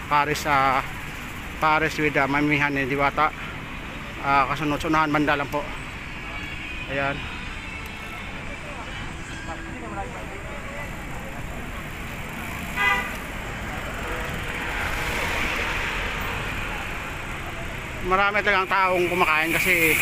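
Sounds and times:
road traffic noise: 0.0 - 20.0
faint voices: 3.0 - 20.0.

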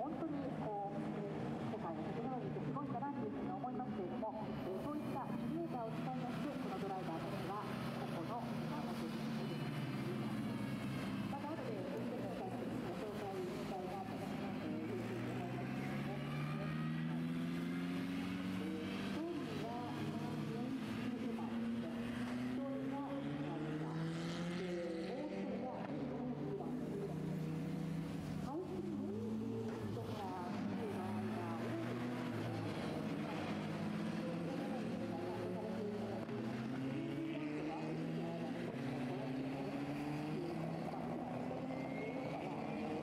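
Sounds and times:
race car engines at low revs: 0.0 - 43.0.

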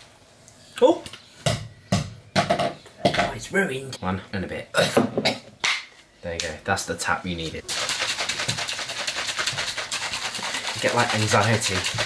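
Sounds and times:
plastic shaker bottle being shaken: 7.6 - 12.0.

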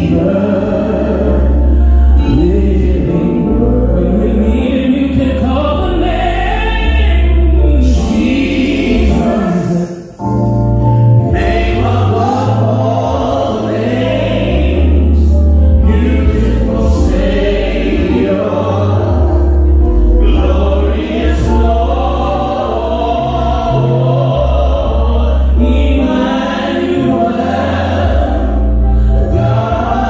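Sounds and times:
gospel choir singing: 0.0 - 30.0
sustained low chords: 0.0 - 30.0.

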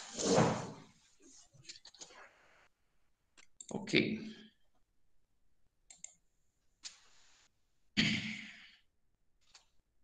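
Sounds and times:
keyboard and mouse clicks: 5.9 - 6.2, 9.4 - 9.8.

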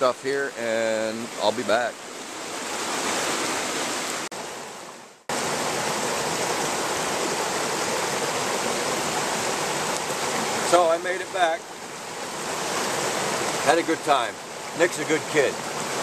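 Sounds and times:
stream running over rocks: 0.0 - 16.0.

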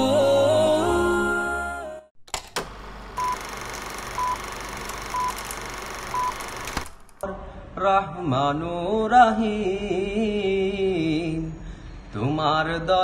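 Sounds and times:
man singing: 0.0 - 2.1, 7.2 - 13.0
clicks: 2.3 - 7.2
short electronic beeps: 3.2 - 3.5, 4.1 - 4.5, 5.1 - 5.5, 6.1 - 6.5.

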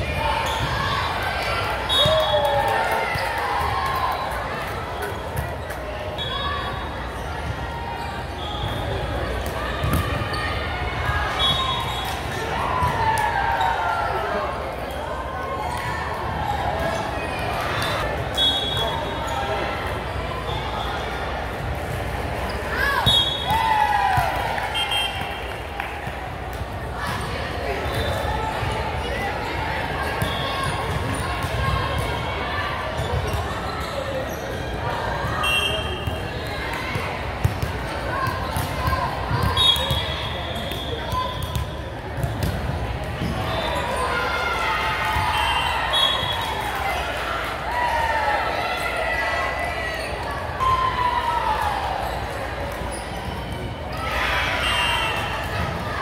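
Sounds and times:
sneaker squeaks: 0.3 - 1.0, 11.3 - 12.9, 16.8 - 19.6, 27.8 - 31.8, 32.9 - 36.5, 37.5 - 42.6, 43.2 - 44.2, 45.1 - 46.6, 52.9 - 55.8
volleyballs hit and bouncing: 36.0 - 43.5.

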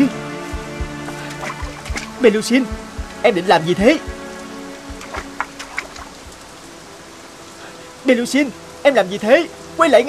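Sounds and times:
soft background music: 0.0 - 10.0
steady rain falling: 0.0 - 10.0.

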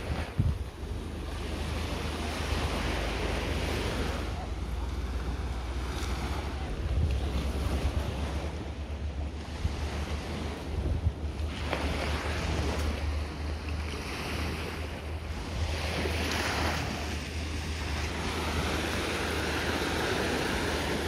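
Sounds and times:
small waves breaking on beach: 0.0 - 21.0
wind on microphone: 0.0 - 21.0.

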